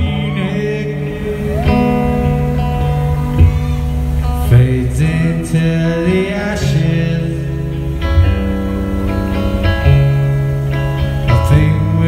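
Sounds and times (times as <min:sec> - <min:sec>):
bass line: 0:00.0 - 0:12.0
electric guitar: 0:00.0 - 0:12.0.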